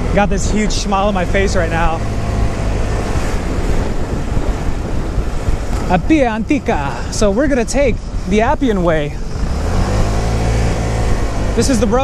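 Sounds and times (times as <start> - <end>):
scooter engine cruising: 0.0 - 12.0
wind rushing over microphone: 0.0 - 12.0.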